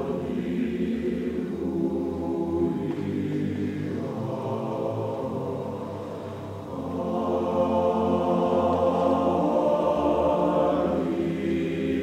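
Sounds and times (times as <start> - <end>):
men's choir singing: 0.0 - 12.0.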